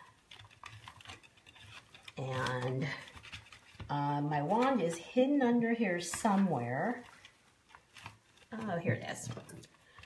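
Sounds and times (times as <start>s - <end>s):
fabric rustling and crackling: 0.0s - 10.0s.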